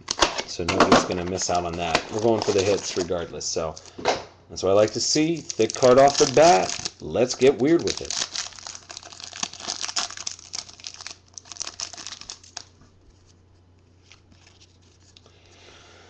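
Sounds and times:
plastic wrapper crinkling and tearing: 1.1s - 4.0s, 4.7s - 12.8s.

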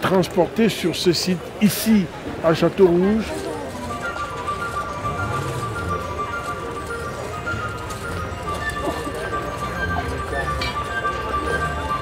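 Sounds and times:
music of held tones: 3.8s - 12.0s.

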